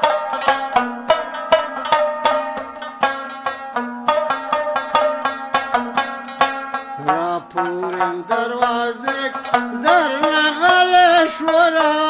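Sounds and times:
plucked lute strokes: 0:00.0 - 0:12.0
man singing long held notes: 0:07.0 - 0:12.0.

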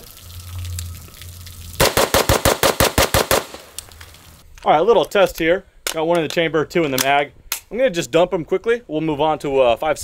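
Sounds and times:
rapid semi-automatic pistol shots: 0:01.8 - 0:03.8.

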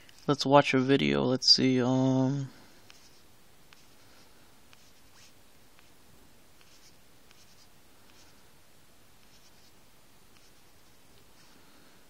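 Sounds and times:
fingertip swishing on touchscreen: 0:02.8 - 0:06.0, 0:06.6 - 0:08.4, 0:09.2 - 0:11.6.

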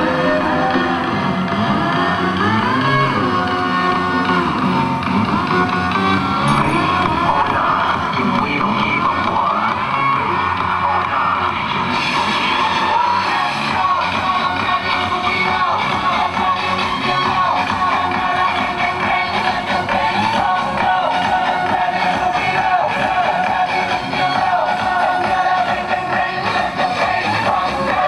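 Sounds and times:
loud dance music over loudspeakers: 0:00.0 - 0:28.0.

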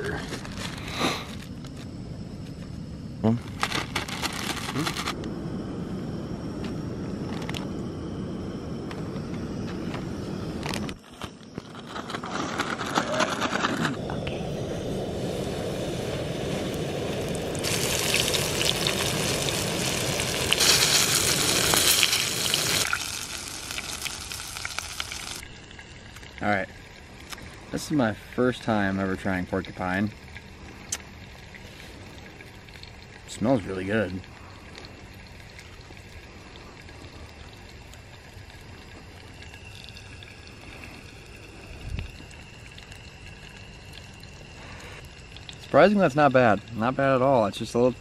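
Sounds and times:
steady background hiss: 0:00.0 - 0:48.0
plastic bag crinkling: 0:03.4 - 0:05.2.

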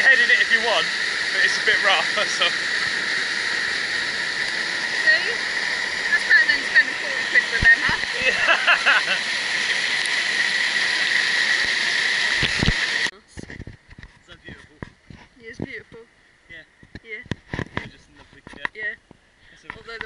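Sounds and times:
waterfall pouring into pool: 0:00.0 - 0:13.1.

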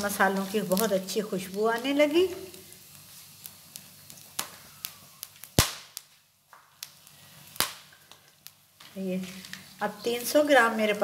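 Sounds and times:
spices crackling in hot oil: 0:00.0 - 0:11.0.

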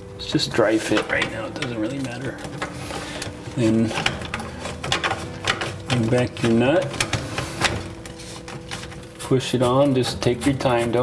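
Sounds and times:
plastic pipes clicking and knocking: 0:00.7 - 0:09.1.

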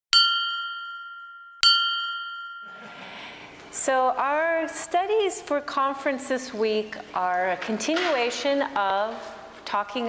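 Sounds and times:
small bell ringing: 0:00.2 - 0:03.2.

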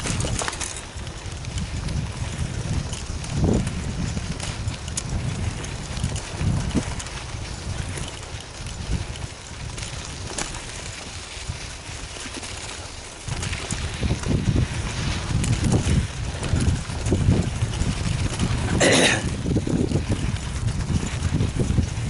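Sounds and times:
bicycle tyres rumbling on dirt: 0:00.0 - 0:22.0
bike rattling: 0:00.0 - 0:22.0
wind buffeting microphone: 0:00.0 - 0:22.0.

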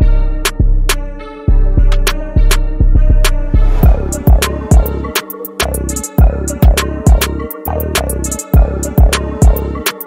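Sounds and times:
deep bass notes: 0:00.0 - 0:09.8
pitched melodic loop: 0:00.4 - 0:10.0
sharp percussion hits: 0:03.8 - 0:09.6.

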